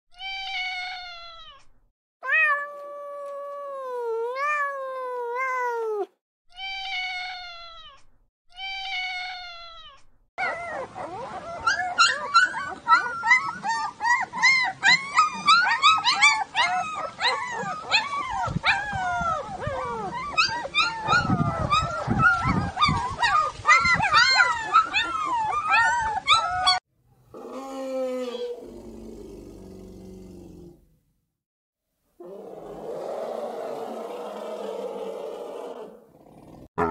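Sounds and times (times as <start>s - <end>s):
cat meowing: 0.1s - 10.0s
puppies whining and yelping: 10.4s - 26.8s.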